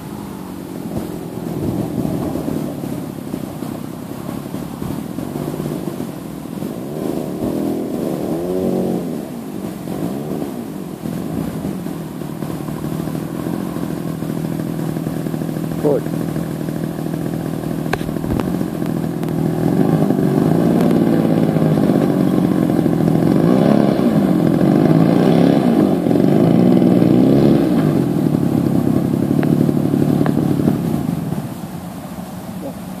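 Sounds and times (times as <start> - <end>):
model airplane engine running: 0.0 - 33.0.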